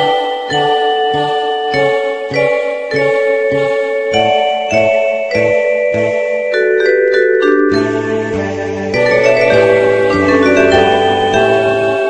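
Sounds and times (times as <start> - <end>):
synthesized sustained notes: 7.6 - 12.0.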